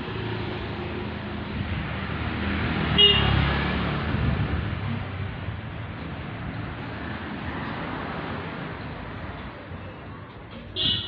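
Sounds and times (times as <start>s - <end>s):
motor scooter passing: 0.0s - 5.1s.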